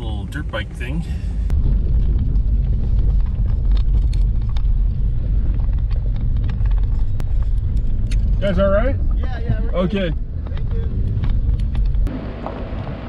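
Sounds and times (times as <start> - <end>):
engine and tyres rumbling: 0.0 - 13.0
stones clicking under tyres: 1.5 - 13.0.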